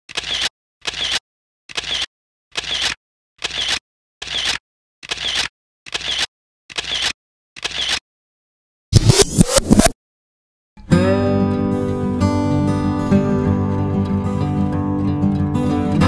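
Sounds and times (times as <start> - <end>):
camera shutter: 0.1 - 8.0.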